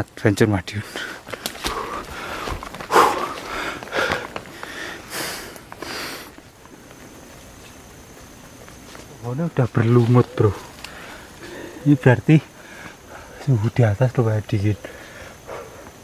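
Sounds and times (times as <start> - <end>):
faint steady high whine: 0.0 - 16.0
heavy breathing: 0.8 - 6.4, 10.4 - 13.5, 14.8 - 16.0
rustling close to microphone: 1.2 - 9.2.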